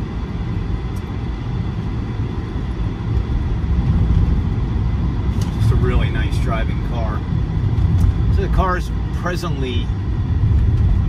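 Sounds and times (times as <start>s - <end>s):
tyre and road rumble: 0.8s - 11.0s.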